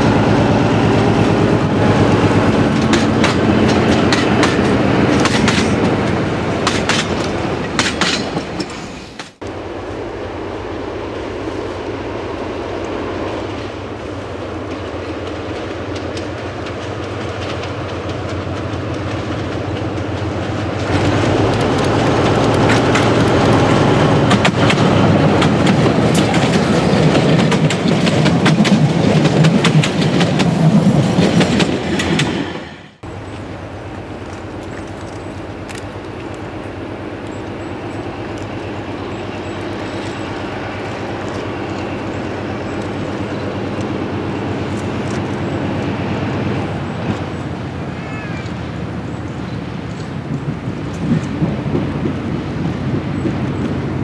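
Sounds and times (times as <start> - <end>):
train wheels clattering over rails: 0.0 - 9.4, 13.5 - 33.4, 48.8 - 54.0
diesel locomotive engine rumbling: 0.0 - 54.0.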